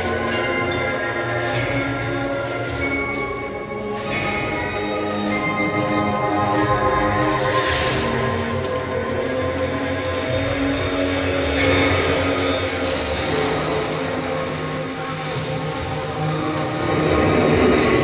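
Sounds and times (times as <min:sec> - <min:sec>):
rustling noise: 0:00.0 - 0:18.0.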